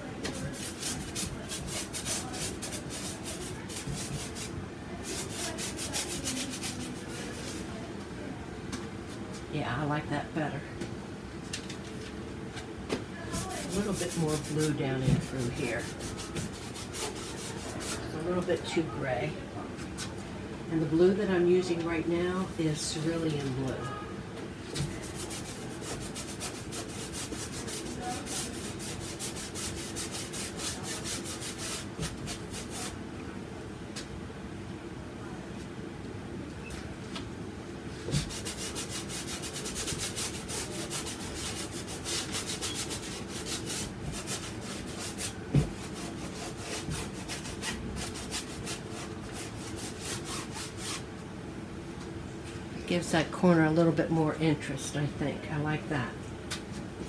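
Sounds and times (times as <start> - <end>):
bristle brush scrubbing canvas: 0.3 - 7.7, 13.3 - 18.2, 24.8 - 33.0, 38.1 - 51.0.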